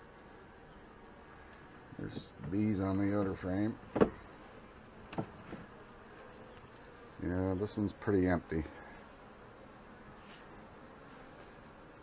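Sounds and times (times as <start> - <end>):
bees humming: 0.0 - 12.0.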